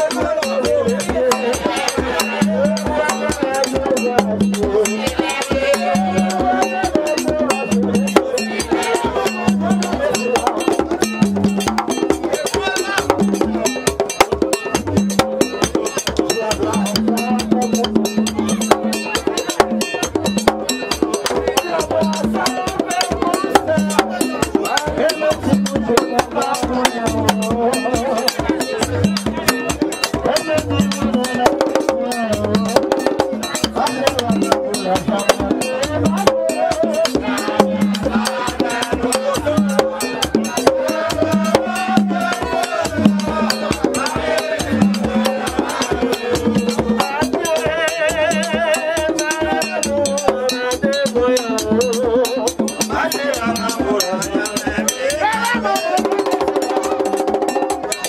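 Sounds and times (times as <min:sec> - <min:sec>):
fast dense drumming: 0:00.0 - 0:58.0
sharp clacking percussion: 0:00.0 - 0:58.0
voices singing: 0:00.0 - 0:58.0.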